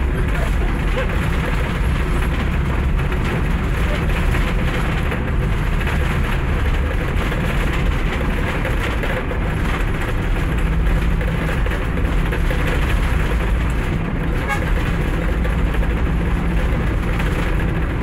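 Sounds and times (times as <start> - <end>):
engine and road rumble: 0.0 - 18.0.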